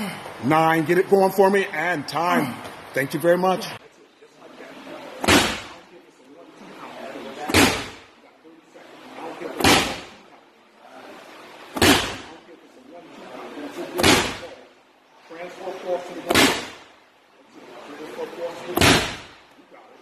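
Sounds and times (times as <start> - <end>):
medicine ball slamming on floor: 7.5 - 8.0, 9.6 - 10.1, 11.8 - 12.2, 18.8 - 19.3.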